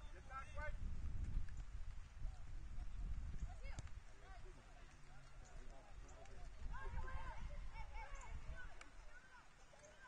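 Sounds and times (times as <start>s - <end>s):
distant players shouting: 6.4s - 10.0s.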